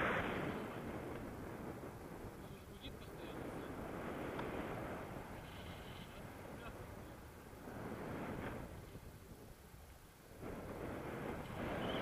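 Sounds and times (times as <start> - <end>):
air rushing over microphone: 0.0 - 9.5.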